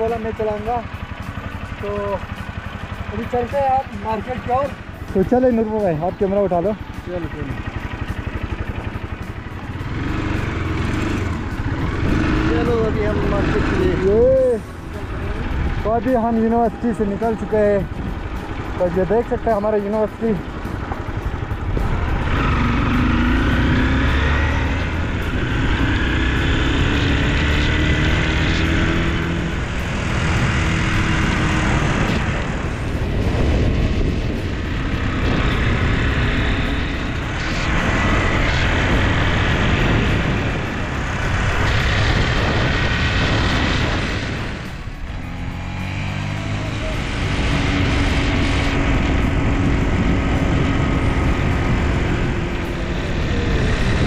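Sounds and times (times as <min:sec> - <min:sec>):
motorcycle engine running: 0:00.0 - 0:54.0
steady rushing noise: 0:00.0 - 0:54.0.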